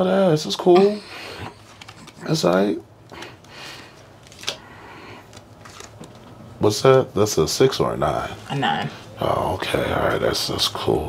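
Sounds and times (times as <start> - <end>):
playing cards rustling: 1.3 - 7.0.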